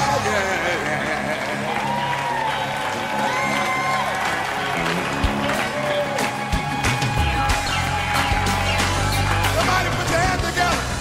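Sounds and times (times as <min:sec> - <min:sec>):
audience applauding and cheering: 0:00.0 - 0:11.0.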